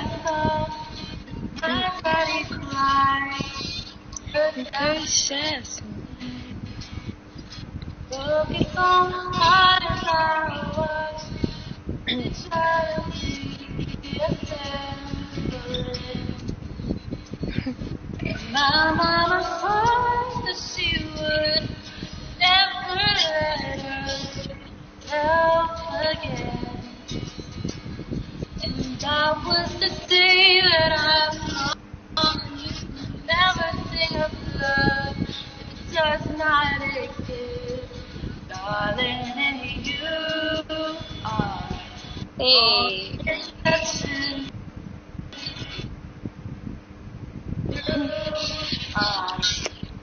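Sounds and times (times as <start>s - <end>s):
woman singing slow melody: 0.0s - 6.6s, 8.1s - 16.5s, 17.5s - 27.2s, 28.6s - 44.5s, 47.7s - 49.7s.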